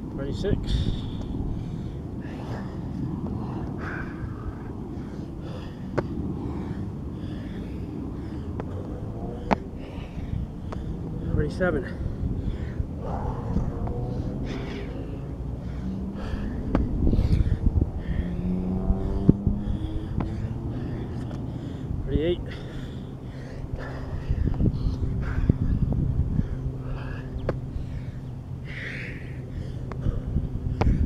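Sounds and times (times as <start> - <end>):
low hum: 0.0 - 31.0
man breathing hard: 0.4 - 31.0.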